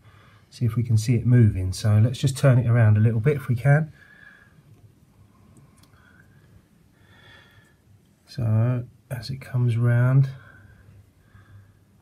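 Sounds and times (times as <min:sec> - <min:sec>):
soft breaths: 0:00.0 - 0:00.7, 0:03.1 - 0:08.6, 0:09.5 - 0:12.0.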